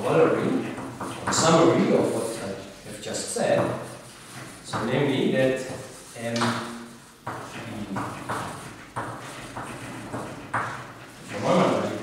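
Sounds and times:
chalk scratching on blackboard: 0.0 - 12.0.

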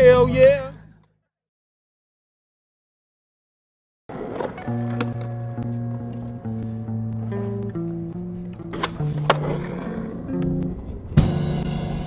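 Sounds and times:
background music: 0.0 - 1.0, 4.6 - 12.0
skateboard clacking on concrete: 4.1 - 10.8.

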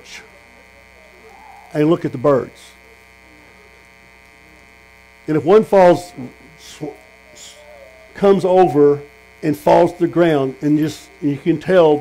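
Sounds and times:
faint voice: 0.0 - 4.8, 5.5 - 9.0
electrical mains hum: 0.0 - 12.0.

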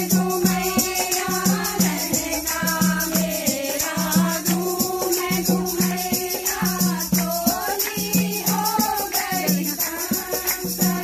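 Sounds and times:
percussion with jingling rattle: 0.0 - 11.0
women singing folk song: 0.0 - 11.0
hand-clapping: 0.5 - 11.0.

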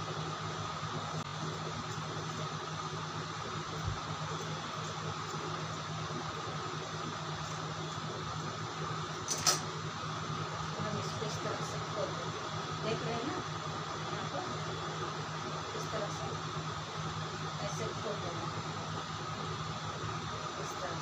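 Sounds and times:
fan humming: 0.0 - 21.0.

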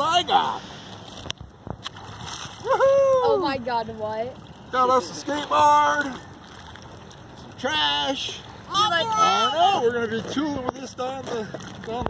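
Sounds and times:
water splashing faintly: 0.0 - 12.0.

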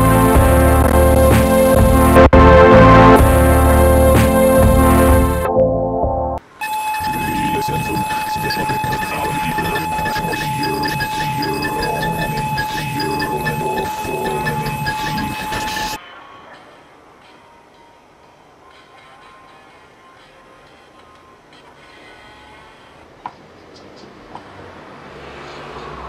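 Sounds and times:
organ-like chords: 0.0 - 6.4, 7.0 - 16.0
sampled electronic loop: 0.0 - 16.0.

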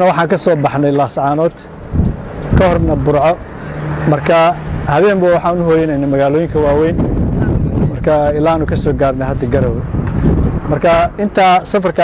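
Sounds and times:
man speaking: 0.0 - 1.8, 2.5 - 3.4, 4.0 - 9.8, 10.7 - 12.0
car road noise: 0.0 - 12.0.

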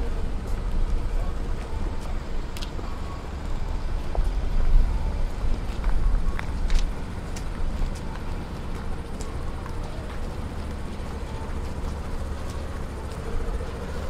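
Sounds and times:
traffic rumble: 0.0 - 14.0.

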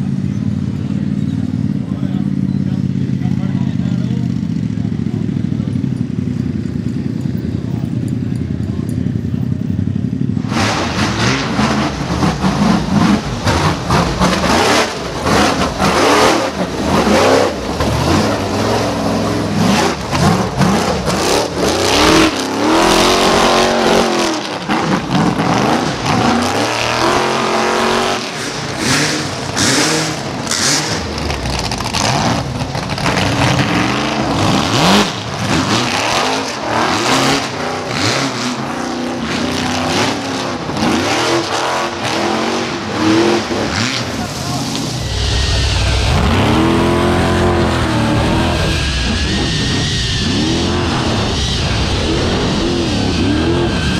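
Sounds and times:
buggy engine revving hard: 10.0 - 53.9
spectators' voices: 42.8 - 53.8.

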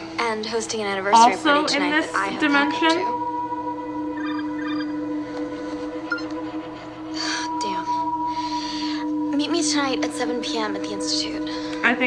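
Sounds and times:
drone-like background music: 0.0 - 12.0.

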